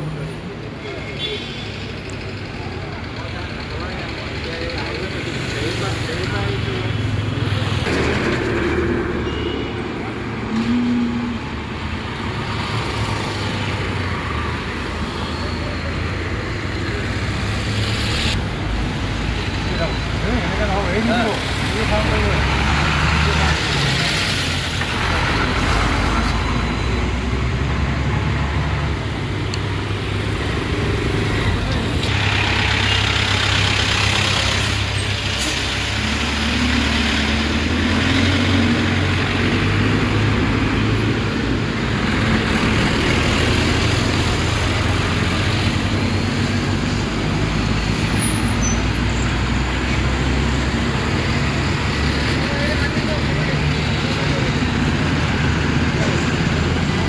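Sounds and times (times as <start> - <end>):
voices: 0.0 - 17.9, 49.8 - 57.0
truck and car engines rumbling: 0.0 - 57.0.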